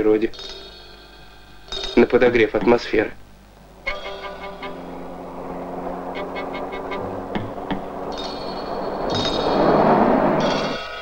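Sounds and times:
rush of noise: 0:03.3 - 0:11.0.

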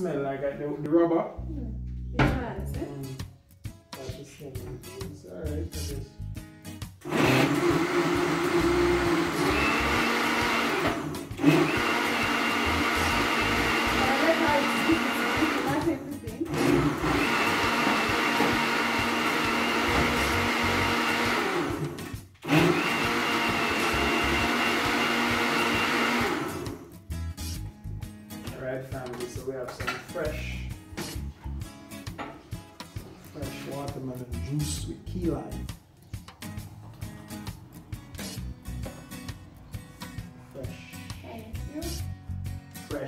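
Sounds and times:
blender motor running: 0:07.0 - 0:26.9.

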